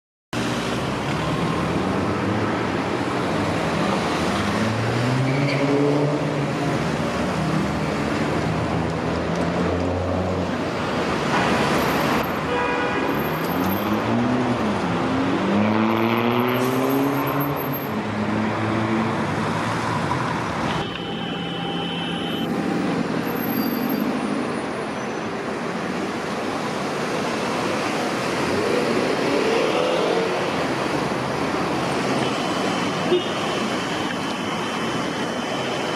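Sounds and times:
city traffic: 0:00.3 - 0:35.9.

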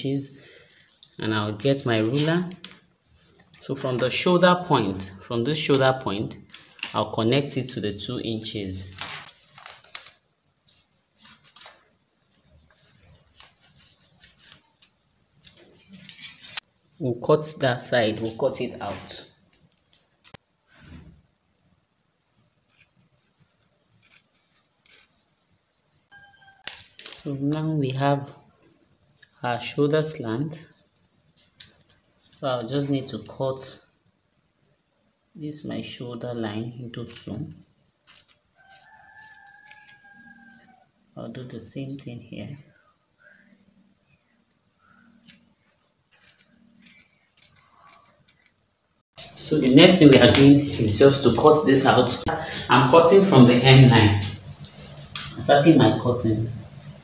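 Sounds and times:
scissors snipping fabric: 0:24.0 - 0:25.1.

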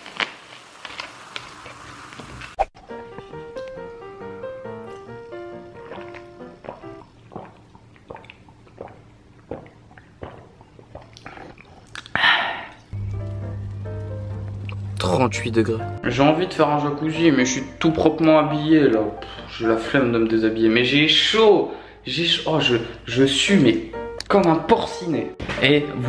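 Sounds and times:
melodic background music: 0:02.8 - 0:07.0, 0:13.0 - 0:20.7, 0:23.2 - 0:26.0.

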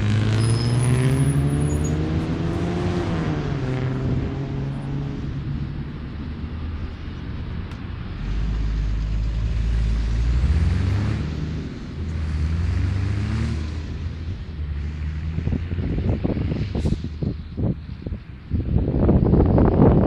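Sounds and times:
vehicle engine rising in pitch: 0:00.0 - 0:17.1
low engine rumble: 0:00.0 - 0:20.0.

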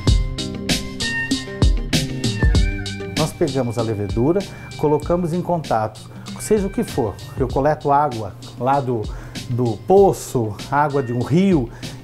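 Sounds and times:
steady drum beat: 0:00.0 - 0:12.0
held synth notes: 0:00.1 - 0:07.6.

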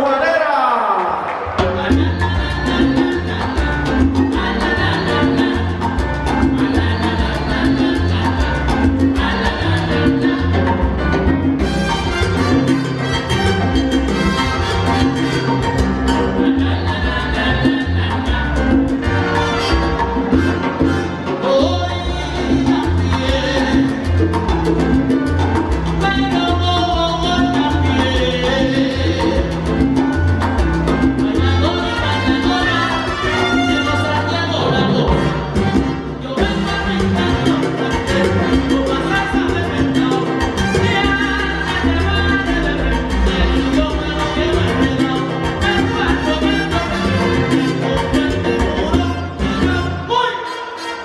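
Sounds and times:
salsa band playing: 0:00.0 - 0:51.0
trumpets: 0:11.6 - 0:16.4, 0:19.0 - 0:22.9, 0:31.3 - 0:39.4, 0:45.6 - 0:51.0.

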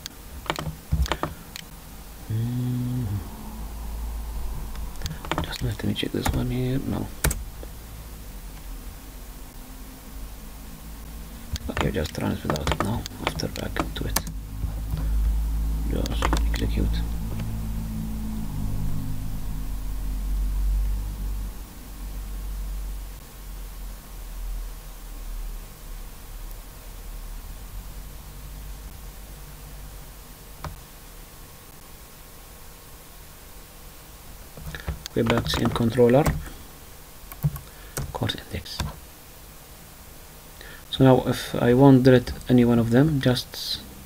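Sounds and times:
computer keyboard clicks: 0:00.0 - 0:01.6, 0:05.0 - 0:06.4, 0:11.5 - 0:15.0, 0:16.0 - 0:16.6, 0:37.3 - 0:38.1
faint hiss: 0:00.0 - 0:44.0
low steady hum: 0:00.0 - 0:44.0
man humming: 0:02.1 - 0:07.2, 0:11.0 - 0:18.5, 0:34.6 - 0:36.7.

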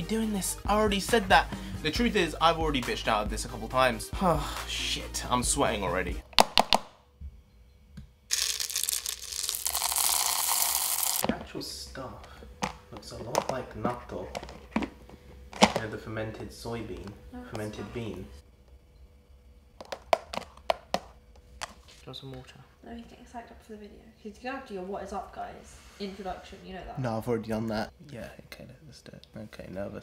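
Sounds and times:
wax beads pouring into metal pot: 0:08.3 - 0:11.2.

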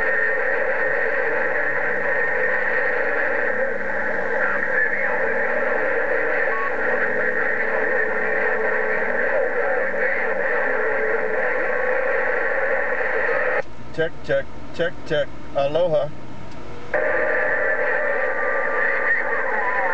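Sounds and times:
faint whining tones: 0:00.0 - 0:19.9
radio static and hiss: 0:00.0 - 0:19.9.

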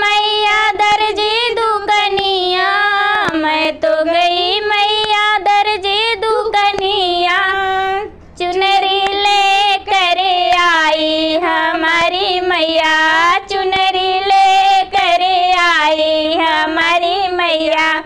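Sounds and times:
women singing devotional song: 0:00.0 - 0:18.0.

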